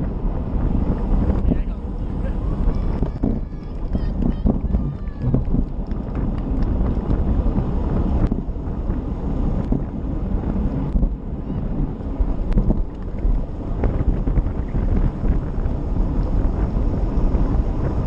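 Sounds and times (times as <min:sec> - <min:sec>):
tyre and road noise: 0:00.0 - 0:18.0
wind buffeting microphone: 0:00.0 - 0:18.0.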